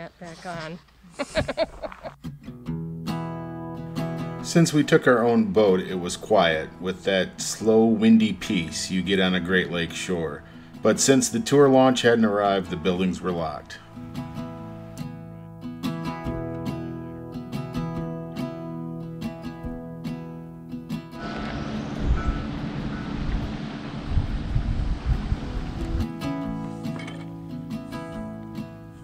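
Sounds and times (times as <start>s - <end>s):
background music: 2.2s - 22.0s, 25.3s - 29.0s
wind buffeting microphone: 21.2s - 26.1s.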